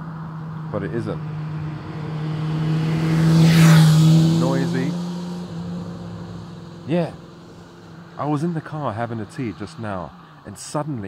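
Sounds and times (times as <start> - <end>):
motorcycle passing by: 0.0 - 10.1.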